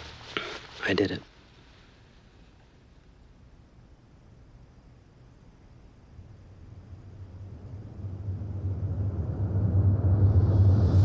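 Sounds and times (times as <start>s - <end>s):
low rumbling drone: 5.5s - 11.0s.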